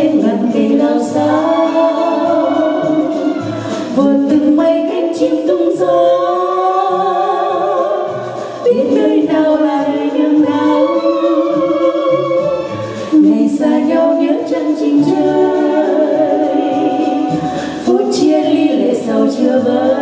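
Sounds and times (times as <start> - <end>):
two women singing a duet: 0.0 - 20.0.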